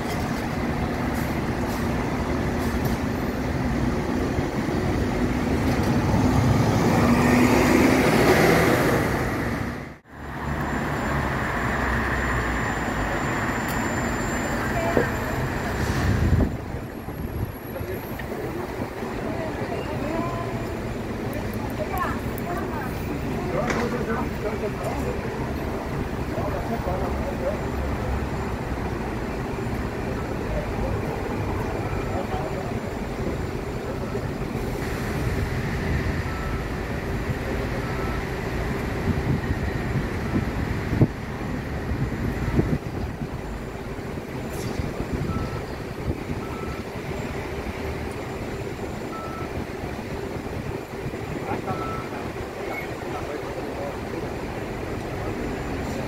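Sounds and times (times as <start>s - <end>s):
bus engine running: 0.0s - 56.0s.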